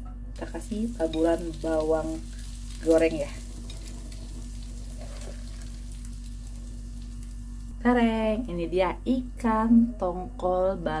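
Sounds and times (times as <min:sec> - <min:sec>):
low electrical hum: 0:00.0 - 0:11.0
light crackles of sprinkled shallots: 0:00.4 - 0:07.8.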